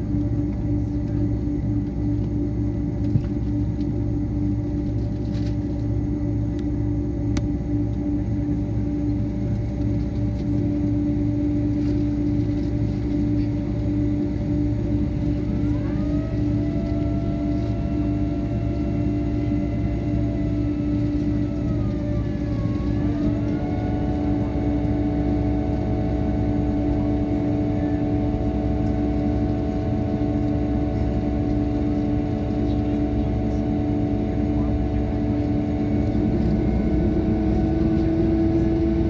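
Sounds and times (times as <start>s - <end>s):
aircraft cabin drone: 0.0s - 39.0s
rising whine: 0.0s - 39.0s.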